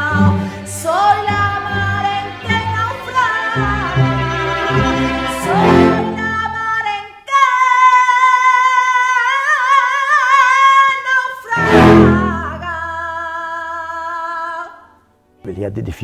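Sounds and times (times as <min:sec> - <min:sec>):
woman singing flamenco: 0:00.0 - 0:03.9, 0:06.0 - 0:14.9
symphony orchestra: 0:00.0 - 0:06.6, 0:11.6 - 0:12.7.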